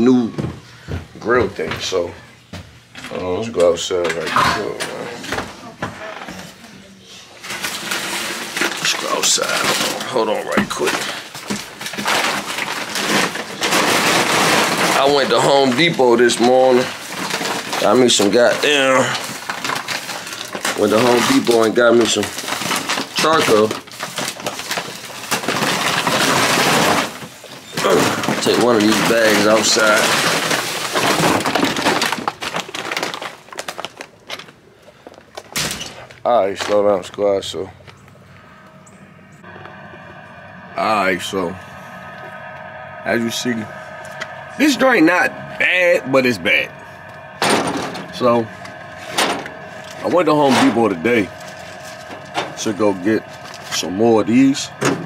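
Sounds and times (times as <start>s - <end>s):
low steady hum: 35.6s - 55.0s.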